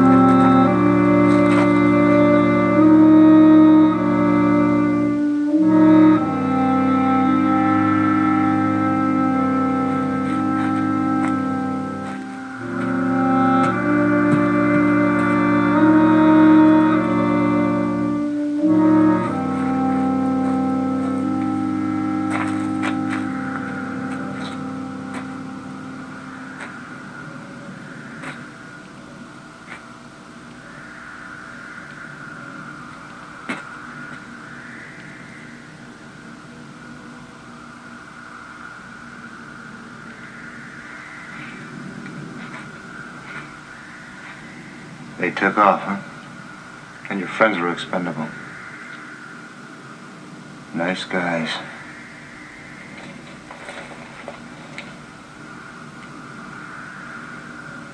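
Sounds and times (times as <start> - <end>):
film score from television speaker: 0.0 - 57.9.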